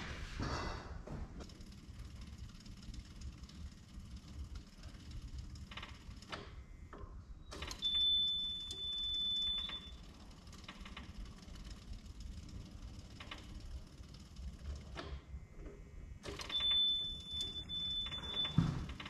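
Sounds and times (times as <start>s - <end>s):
electric fuel pump running: 1.1s - 19.0s
high-pitched key-on beep: 7.5s - 10.0s, 16.4s - 18.7s.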